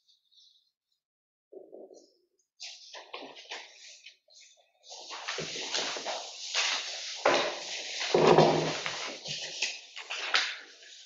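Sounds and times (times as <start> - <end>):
paper rustling: 2.6 - 11.0.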